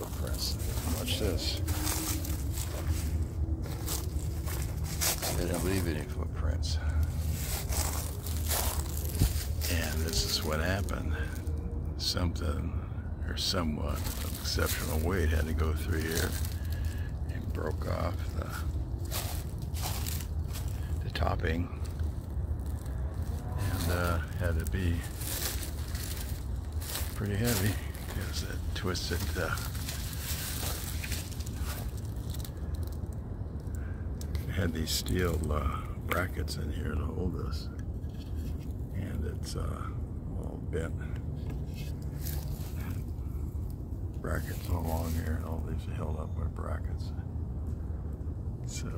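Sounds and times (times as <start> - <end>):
footsteps crunching dry leaves: 0.0 - 11.6, 13.8 - 33.8, 41.9 - 43.4, 44.4 - 45.5
handheld microphone rumble and crackling: 0.0 - 48.9.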